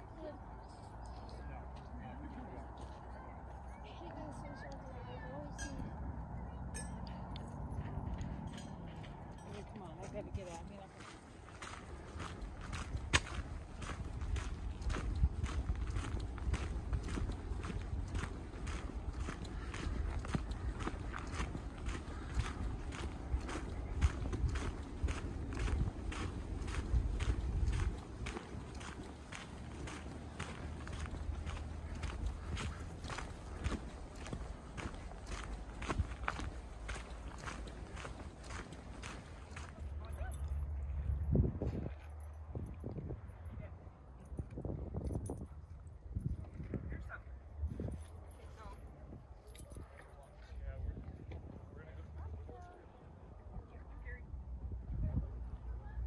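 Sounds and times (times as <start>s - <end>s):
footsteps on dirt trail: 6.9s - 42.3s.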